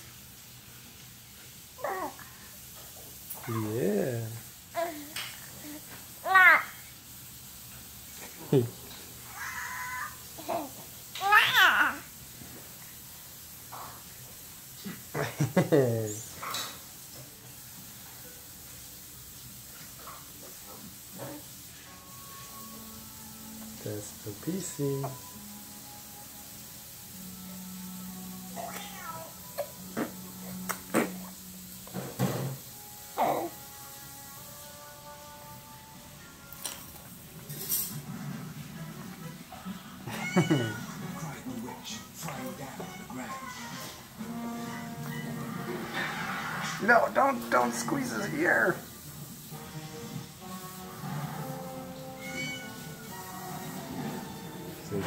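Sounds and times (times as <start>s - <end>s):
background music: 21.9s - 31.9s, 32.6s - 37.3s, 40.1s - 55.0s
cat meowing: 28.6s - 29.4s, 40.1s - 40.9s.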